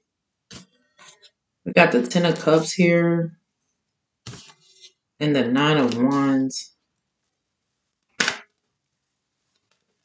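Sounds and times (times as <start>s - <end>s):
cards being shuffled: 4.3s - 4.8s.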